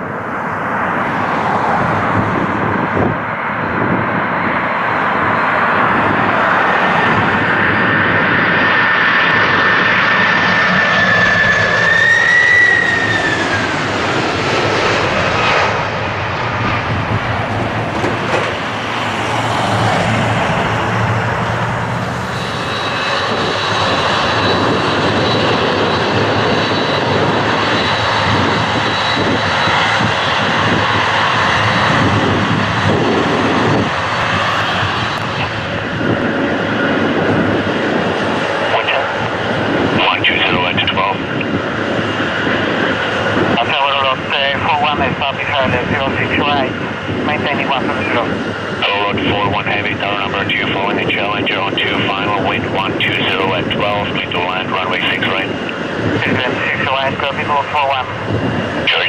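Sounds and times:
jet airliner engine roar: 0.0s - 59.0s
jet engines roaring overhead: 0.0s - 59.0s.

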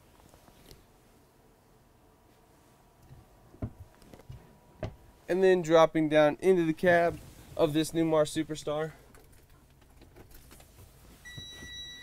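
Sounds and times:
faint clicks and shuffling: 0.0s - 1.2s, 2.2s - 5.1s, 6.8s - 11.8s.

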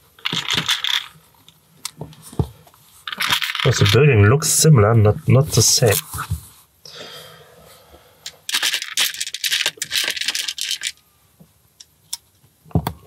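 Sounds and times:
plastic pieces rattling: 0.2s - 1.2s, 3.0s - 4.0s, 8.4s - 11.0s.

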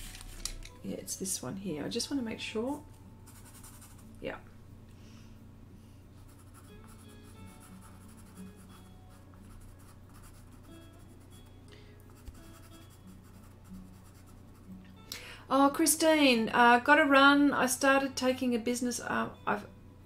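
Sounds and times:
soft background music: 0.0s - 20.0s
pencil scratching on board: 3.3s - 4.0s, 6.2s - 11.3s, 12.2s - 14.7s.

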